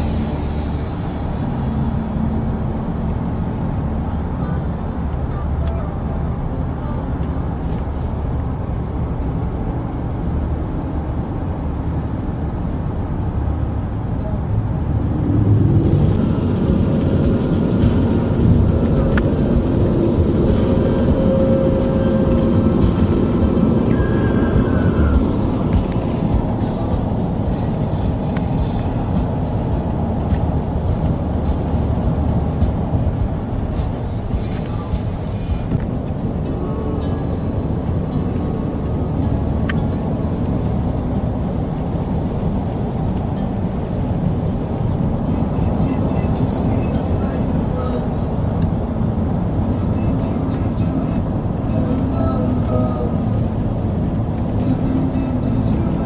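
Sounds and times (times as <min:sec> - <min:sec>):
car road and engine rumble: 0:00.0 - 0:56.0
music from car radio: 0:16.1 - 0:56.0.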